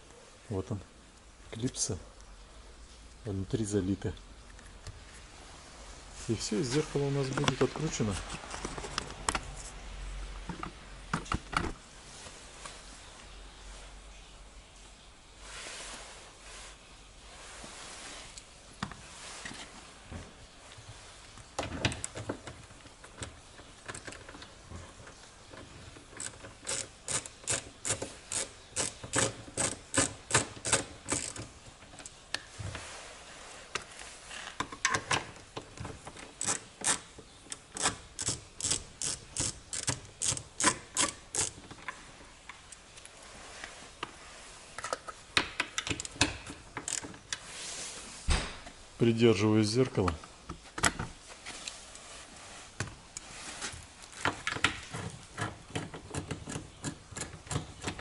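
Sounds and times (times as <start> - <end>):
ratchet wrench clicking: 26.2 - 31.4, 37.8 - 41.6.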